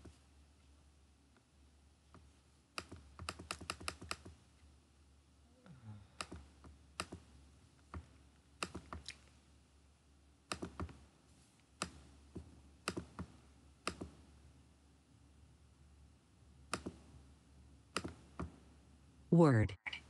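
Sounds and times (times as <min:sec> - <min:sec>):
mouse and keyboard clicking: 0:02.8 - 0:04.4, 0:06.2 - 0:07.2, 0:07.9 - 0:09.2, 0:10.5 - 0:11.0, 0:12.9 - 0:13.3, 0:16.7 - 0:17.0, 0:18.0 - 0:18.5.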